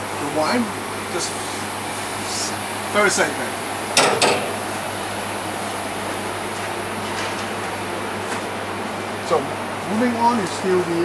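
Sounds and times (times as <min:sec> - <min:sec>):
air conditioning hum: 0:00.0 - 0:11.0
metal gate clanking: 0:04.0 - 0:04.9.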